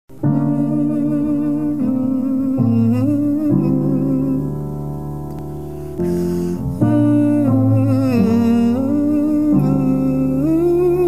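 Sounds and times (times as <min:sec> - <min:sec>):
man humming melody: 0:00.1 - 0:04.8, 0:06.0 - 0:11.0.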